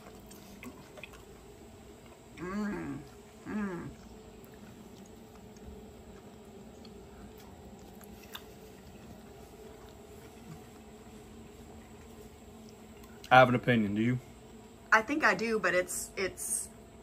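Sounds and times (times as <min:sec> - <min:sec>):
faint chewing: 0:00.0 - 0:13.4
low steady hum: 0:00.0 - 0:17.0.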